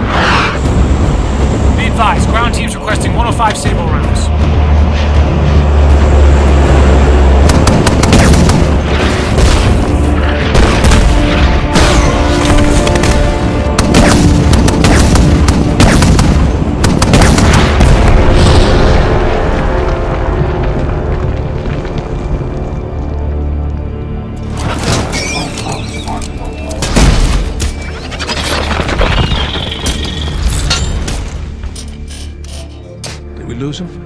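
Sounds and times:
deep continuous rumble: 0.0s - 11.7s, 12.5s - 33.0s
dramatic music score: 0.0s - 34.0s
cannon firing: 7.4s - 9.9s, 13.8s - 18.2s.

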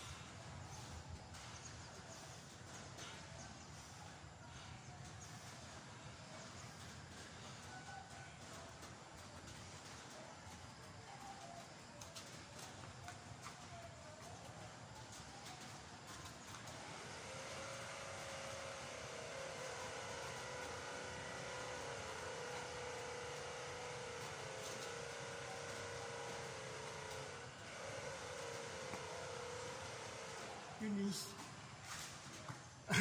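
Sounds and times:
distant engine drone: 0.0s - 33.0s.

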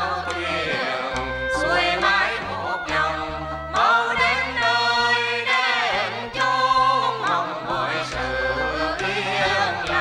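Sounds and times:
group singing sliding melody: 0.0s - 10.0s.

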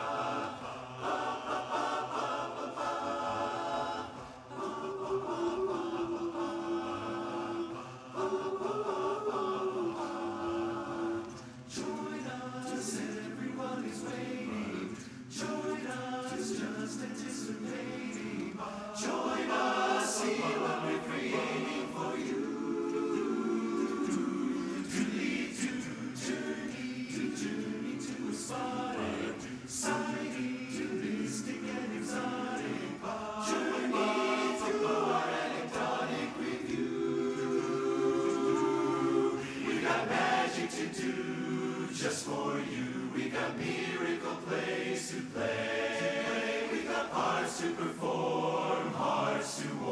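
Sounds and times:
men's chorus singing a cappella: 0.0s - 49.9s.

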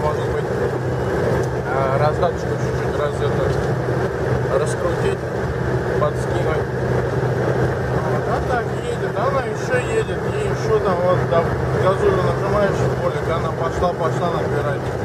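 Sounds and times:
engine and tyres droning on wet road: 0.0s - 15.0s
low constant hum: 0.0s - 15.0s.

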